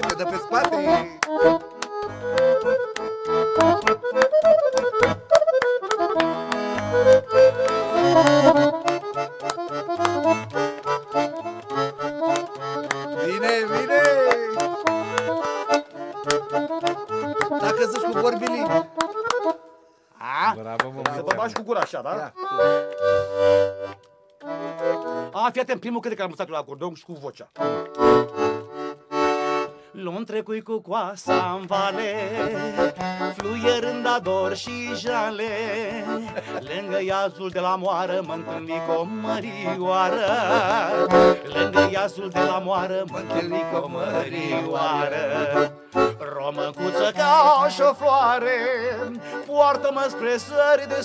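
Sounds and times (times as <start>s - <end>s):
beat of sharp clicks: 0.0s - 19.8s, 20.7s - 25.7s, 27.1s - 29.6s, 31.5s - 51.0s
electronic accordion folk tune: 0.0s - 26.3s, 27.5s - 51.0s.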